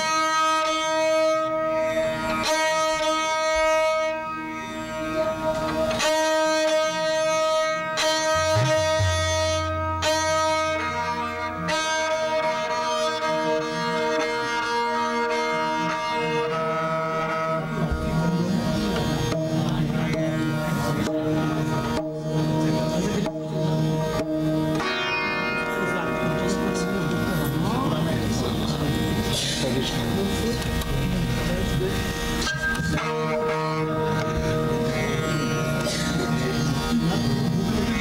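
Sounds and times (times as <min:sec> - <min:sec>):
sarangi melody with sliding notes: 0:00.0 - 0:38.0
steady drone: 0:01.6 - 0:38.0.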